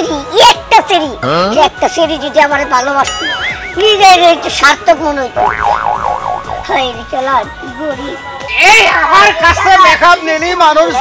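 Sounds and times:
light background music: 0.0 - 11.0
wobbling cartoon tone: 5.4 - 7.1.

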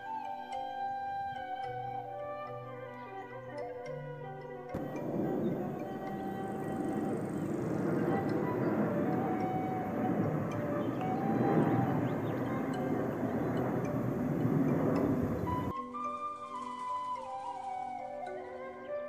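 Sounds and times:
airplane flying overhead: 4.7 - 15.7.

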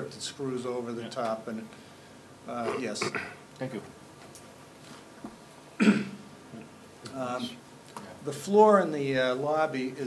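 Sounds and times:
person clearing throat: 2.6 - 3.4, 5.8 - 6.2.

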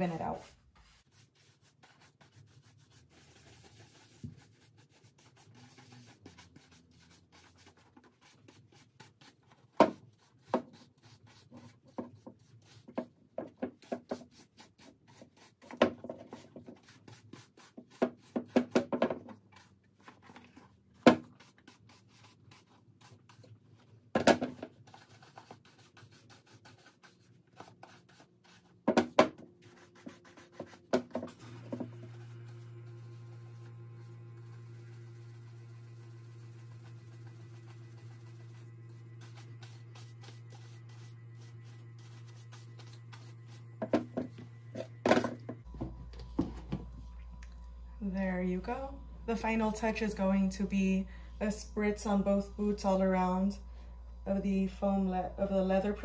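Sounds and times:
brush buffing leather boot: 31.5 - 44.4.

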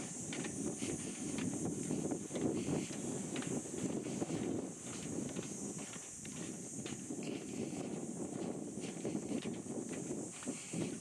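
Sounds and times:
footsteps on a path: 0.0 - 11.0.

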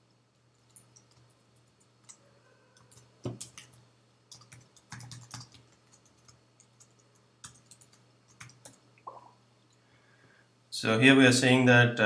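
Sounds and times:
keyboard typing: 0.5 - 2.2, 2.8 - 9.2.

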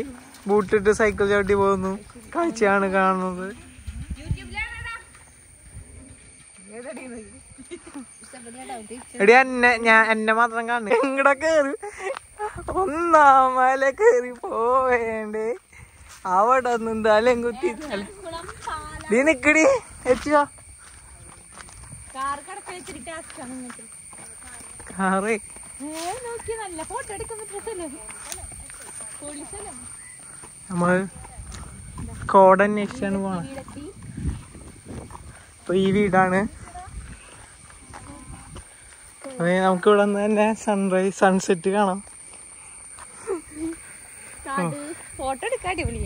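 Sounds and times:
outdoor background noise: 0.0 - 46.0
drawn-out vocal calls: 25.8 - 32.2, 42.1 - 46.0.

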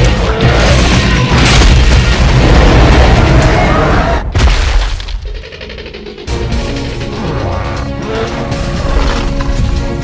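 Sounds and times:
soundtrack music: 0.0 - 4.2, 6.0 - 10.0.

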